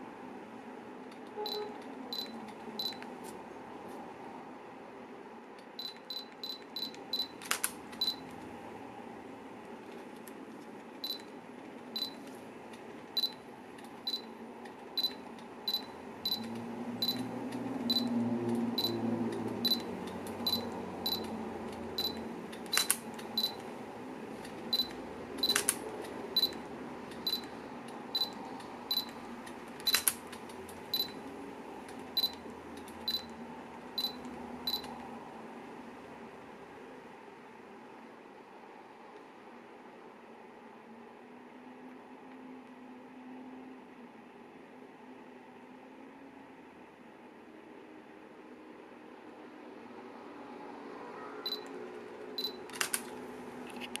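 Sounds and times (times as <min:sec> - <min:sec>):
camera autofocus beeps: 0:01.4 - 0:03.0, 0:08.0 - 0:08.2, 0:24.8 - 0:25.7, 0:29.9 - 0:30.1, 0:51.5 - 0:51.7
camera shutter firing: 0:07.4 - 0:07.8, 0:22.7 - 0:23.0, 0:25.5 - 0:25.8, 0:29.9 - 0:30.2, 0:52.7 - 0:53.1
camera focus beeps: 0:24.8 - 0:25.7, 0:51.5 - 0:51.7.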